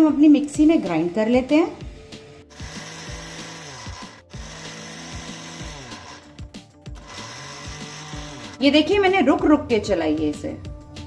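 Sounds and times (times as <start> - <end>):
mixer grinder grinding nuts: 2.5 - 8.6.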